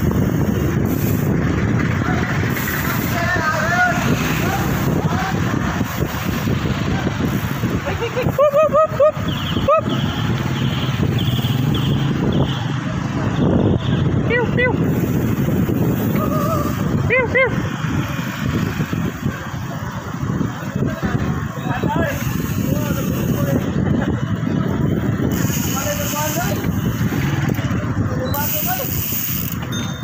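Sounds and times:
road traffic noise: 0.0 - 30.0
rushing wind: 0.0 - 30.0.

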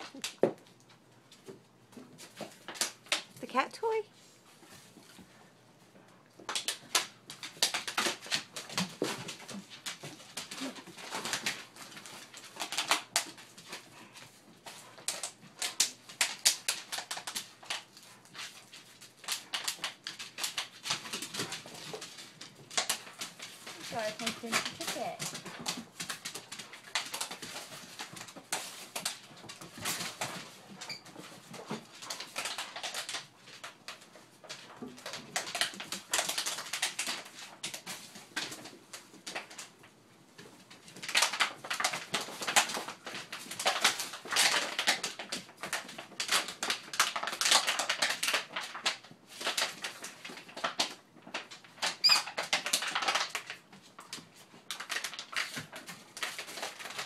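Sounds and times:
paws and toy scuffing wooden floor: 4.1 - 6.5
wrapping paper crinkling: 6.4 - 57.0.

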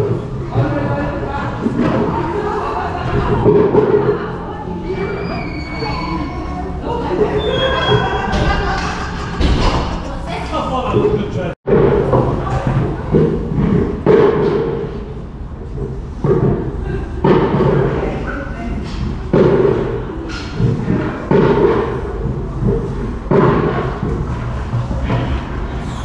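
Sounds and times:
muffled thumps and bumps: 8.4 - 25.8.

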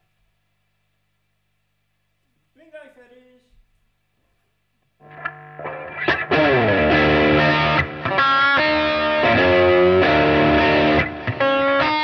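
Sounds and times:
distorted electric guitar notes: 5.0 - 12.0.

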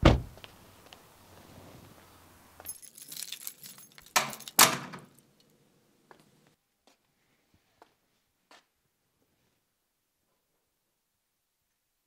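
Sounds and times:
keys jingling: 2.6 - 5.2.

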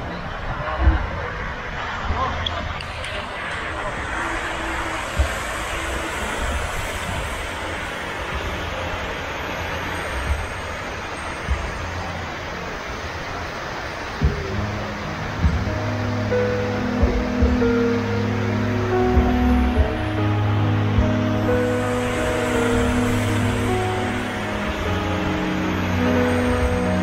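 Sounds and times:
water rushing down walls: 0.8 - 27.0.

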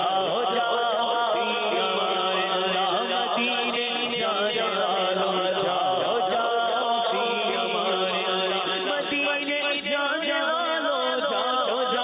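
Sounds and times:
man singing devotional song: 0.0 - 12.0.

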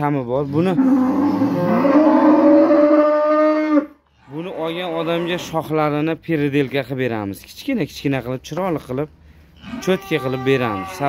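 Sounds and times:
cow mooing: 0.8 - 4.0, 9.6 - 11.0.

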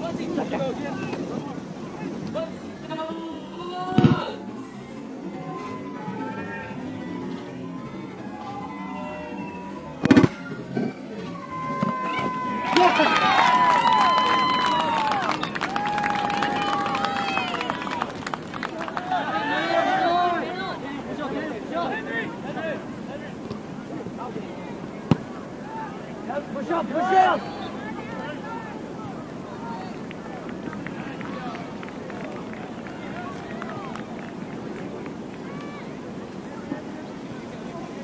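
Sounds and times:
outdoor background noise: 0.0 - 38.0
people calling out: 2.9 - 18.1
long drawn-out shout: 5.2 - 22.8, 25.5 - 29.8.

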